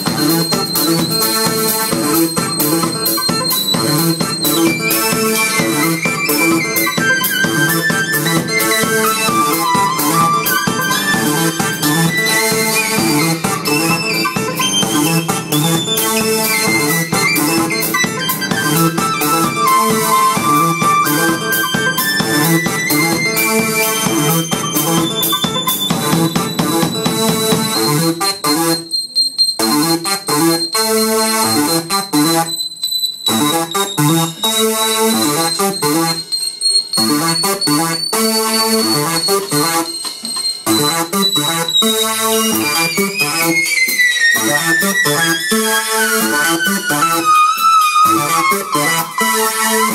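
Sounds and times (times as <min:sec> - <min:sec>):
drum beat: 0:00.0 - 0:28.4
high synth line: 0:00.0 - 0:49.9
synthesizer melody: 0:00.0 - 0:49.9.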